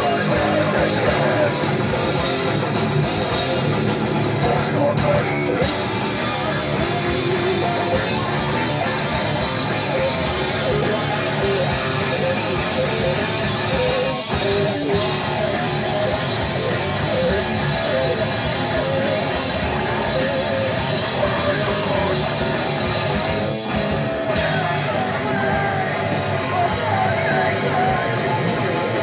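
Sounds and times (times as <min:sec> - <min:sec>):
drums and cymbals: 0:00.0 - 0:29.0
electric guitars: 0:00.0 - 0:29.0.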